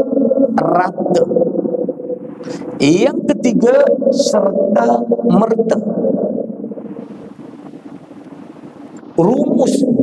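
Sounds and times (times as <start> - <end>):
spoken word echo in a hall: 0.0 - 7.2, 9.0 - 10.0
room noise hiss: 6.6 - 10.0.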